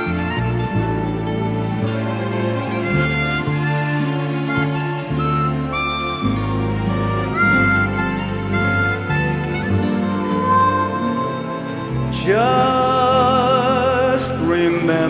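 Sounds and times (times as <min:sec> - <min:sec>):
harmonica solo: 0:00.0 - 0:13.7
bass: 0:00.0 - 0:15.0.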